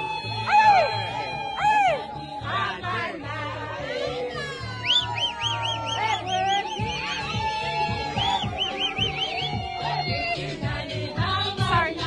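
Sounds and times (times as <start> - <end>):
music with pulsing low beat: 0.0 - 12.0
rising and falling calls: 4.8 - 10.5.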